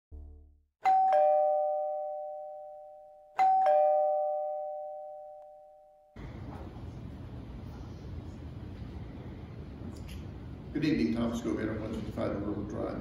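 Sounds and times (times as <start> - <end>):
two-tone doorbell chime: 0.8 - 6.2.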